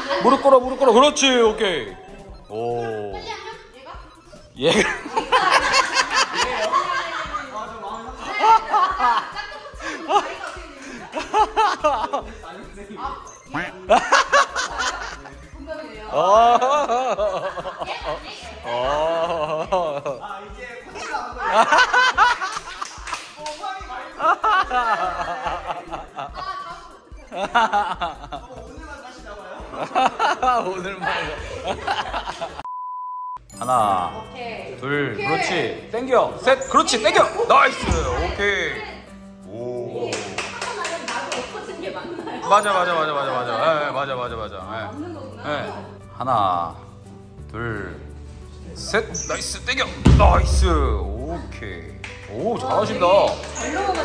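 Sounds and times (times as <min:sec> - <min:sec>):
people laughing: 0:00.0 - 0:32.7, 0:40.0 - 0:46.0, 0:49.5 - 0:54.0
hand clapping: 0:22.3 - 0:24.0, 0:40.0 - 0:41.7, 0:51.8 - 0:54.0
people talking: 0:48.8 - 0:54.0.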